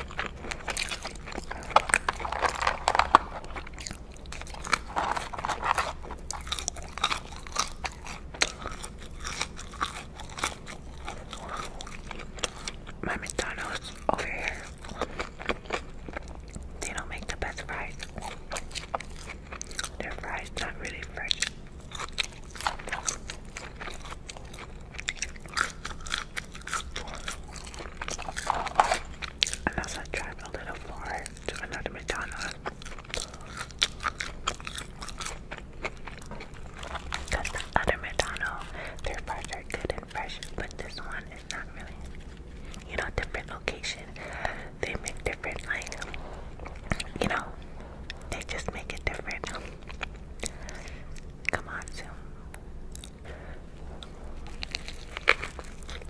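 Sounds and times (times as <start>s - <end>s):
person chewing fries: 0.0s - 56.0s.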